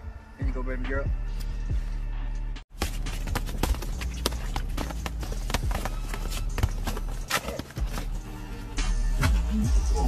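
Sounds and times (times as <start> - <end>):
boxing gloves and feet striking: 2.7 - 9.4.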